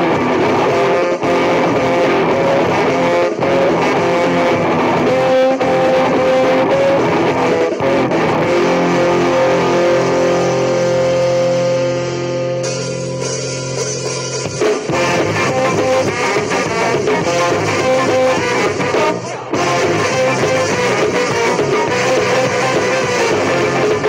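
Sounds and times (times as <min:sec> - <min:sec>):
ska song with guitar and bass: 0:00.0 - 0:24.0.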